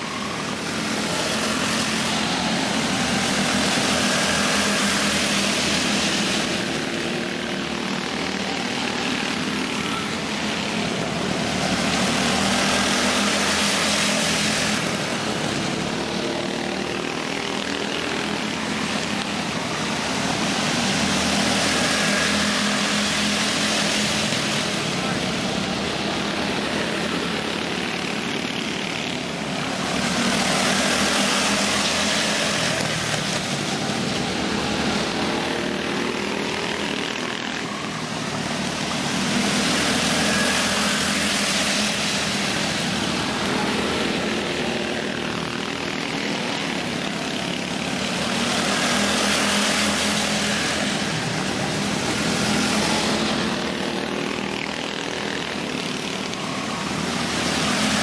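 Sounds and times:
go-kart engines racing: 0.0 - 58.0.

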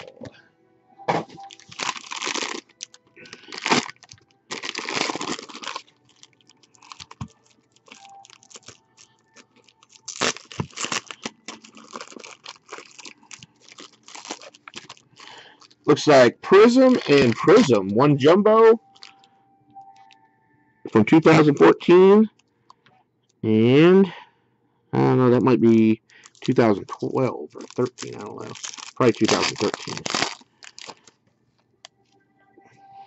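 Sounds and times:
cards rustling and clicking: 1.3 - 5.9, 6.8 - 17.9, 26.2 - 31.2
foil wrapper tearing and crinkling: 1.4 - 17.8, 26.2 - 31.1.

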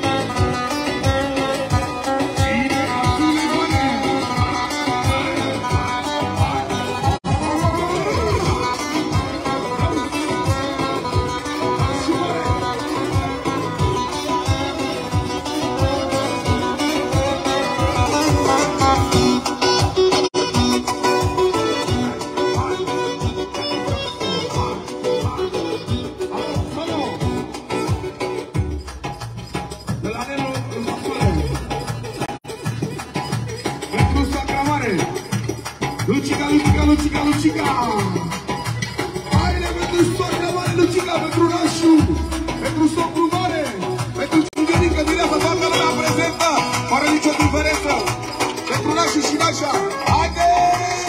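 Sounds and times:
clarinet playing fast melody: 0.0 - 29.0, 36.1 - 51.0
acoustic guitar: 0.0 - 51.0
bass drum dance beat: 0.0 - 51.0.

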